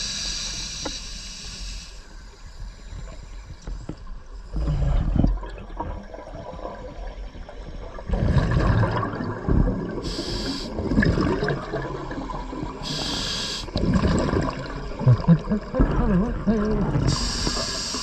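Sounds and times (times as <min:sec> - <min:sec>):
regulator valve hissing: 0:00.0 - 0:03.0, 0:10.0 - 0:10.8, 0:12.3 - 0:13.8, 0:17.1 - 0:18.0
gurgling exhaled bubbles: 0:04.5 - 0:18.0.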